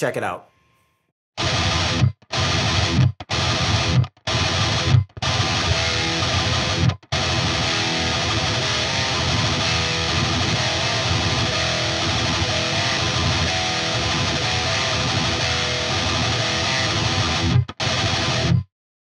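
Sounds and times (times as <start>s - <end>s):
distorted electric guitar riff: 1.4s - 18.7s.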